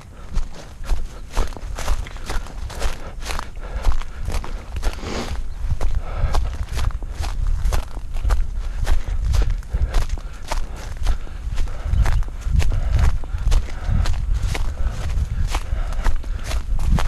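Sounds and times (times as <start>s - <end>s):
running footsteps on dirt: 0.0s - 17.0s
steady low rumble: 0.0s - 17.0s.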